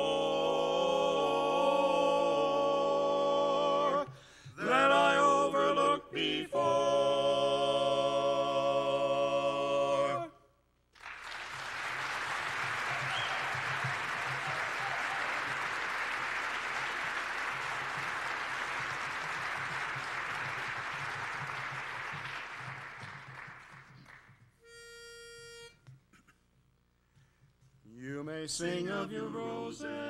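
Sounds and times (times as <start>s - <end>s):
audience applauding: 11.0s - 24.4s
pitch pipe note: 24.6s - 25.8s.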